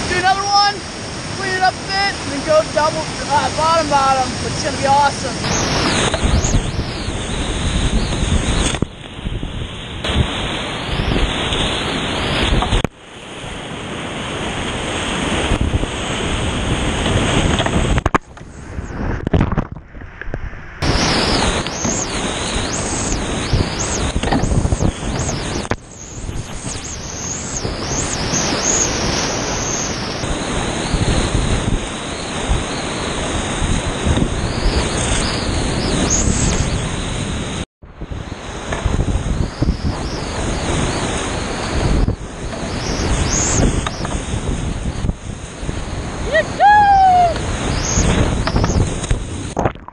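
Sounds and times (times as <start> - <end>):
whitewater rapids rushing: 0.0 - 7.7.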